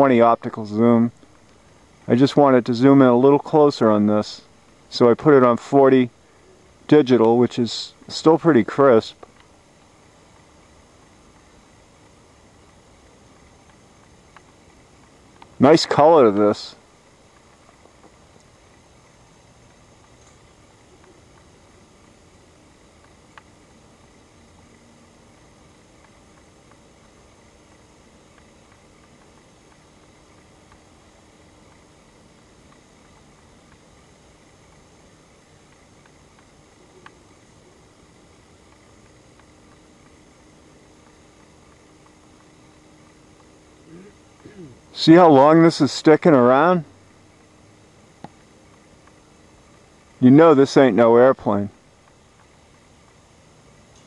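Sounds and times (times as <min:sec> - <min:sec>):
faint background hiss: 0:00.0 - 0:54.0
faint low hum: 0:00.0 - 0:54.0.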